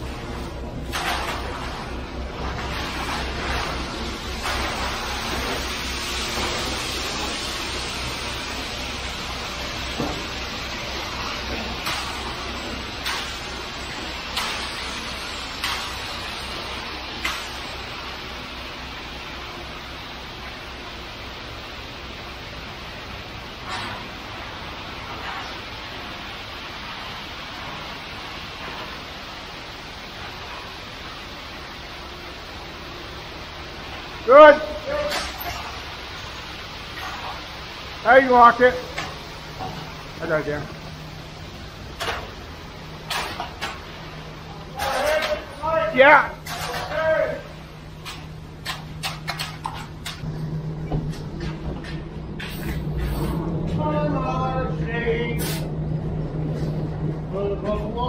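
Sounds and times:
wet concrete rushing down chute: 0:00.0 - 0:50.4
truck engine humming: 0:03.2 - 0:58.0
concrete rakes knocking and scraping: 0:43.1 - 0:43.8, 0:44.7 - 0:45.8, 0:46.4 - 0:47.2, 0:48.0 - 0:50.2.

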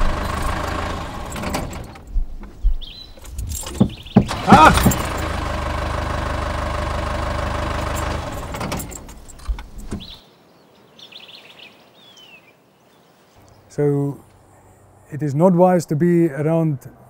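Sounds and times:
vehicle engine running: 0:00.0 - 0:02.6, 0:03.3 - 0:10.0.

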